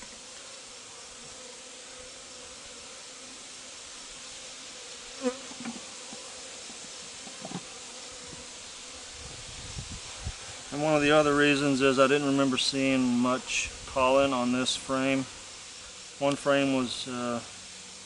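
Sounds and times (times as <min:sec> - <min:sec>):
honeybees buzzing: 0:00.0 - 0:18.0.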